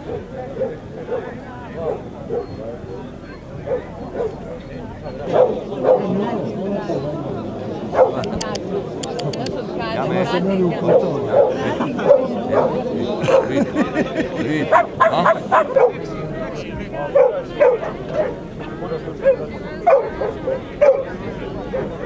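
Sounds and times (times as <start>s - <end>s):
dogs barking: 0.0s - 2.6s, 3.6s - 6.4s, 7.9s - 9.4s, 10.8s - 13.8s, 14.6s - 16.2s, 17.0s - 18.4s, 19.2s - 22.0s
crowd chatter: 0.0s - 22.0s.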